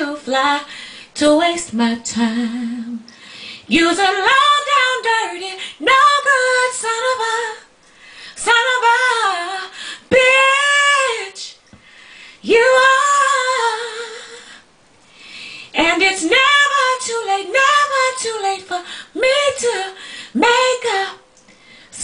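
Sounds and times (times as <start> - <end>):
woman singing a cappella: 0.0 - 14.7, 15.6 - 22.0
singer breathing: 0.7 - 1.2, 3.1 - 3.7, 7.9 - 8.4, 9.7 - 10.1, 11.7 - 12.4, 14.5 - 15.8, 20.0 - 20.4, 21.5 - 22.0.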